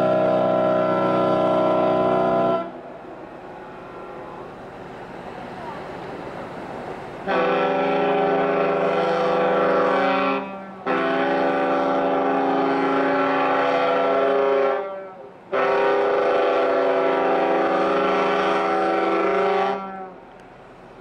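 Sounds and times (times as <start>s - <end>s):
ship's horn blasts: 0.0s - 4.7s, 7.2s - 20.3s
sea noise: 0.0s - 21.0s
wind: 0.0s - 21.0s.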